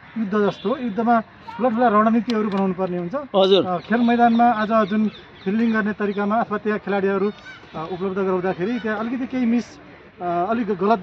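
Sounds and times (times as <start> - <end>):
man speaking: 0.2 - 11.0.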